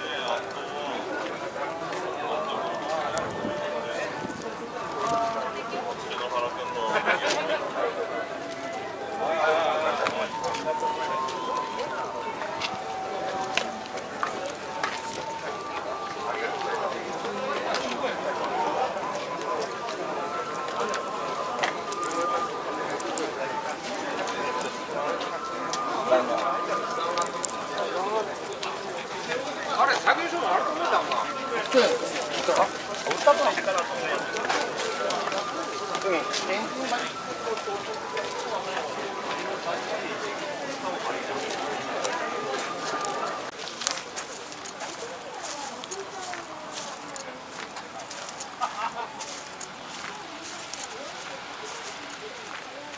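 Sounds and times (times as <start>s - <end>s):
faint steady high tone: 0.0s - 52.9s
outdoor crowd hubbub: 0.0s - 52.9s
people talking: 0.0s - 52.9s.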